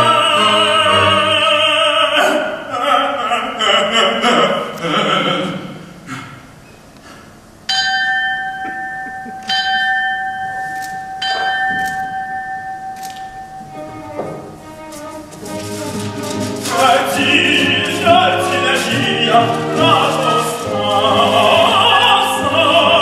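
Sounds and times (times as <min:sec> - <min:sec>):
orchestral music: 0:00.0 - 0:01.9, 0:13.7 - 0:23.0
bell-like struck notes: 0:07.7 - 0:13.8.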